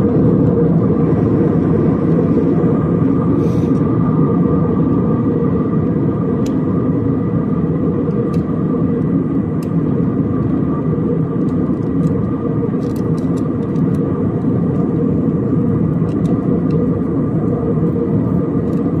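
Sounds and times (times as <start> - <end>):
airliner engine rumble: 0.0 - 19.0
faint steady whine: 0.0 - 19.0.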